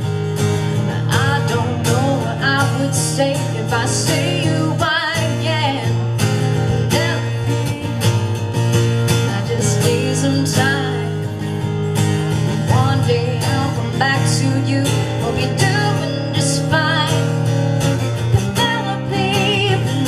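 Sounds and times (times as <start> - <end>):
acoustic guitar strumming: 0.0 - 20.0
person singing: 0.8 - 8.0, 9.3 - 11.4, 12.6 - 17.4, 18.4 - 20.0.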